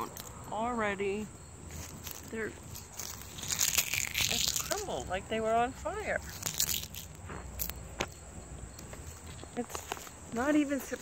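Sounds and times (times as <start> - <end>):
faint insect chirring: 0.0 - 11.0.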